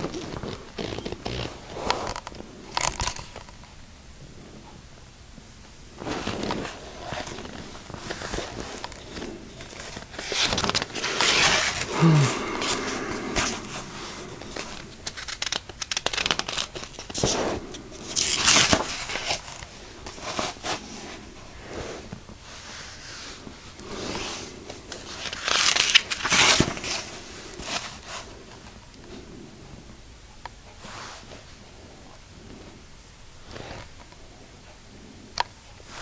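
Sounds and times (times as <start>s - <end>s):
page flips: 6.0s - 21.1s, 23.8s - 28.3s
paper rustling and scraping: 6.0s - 28.4s.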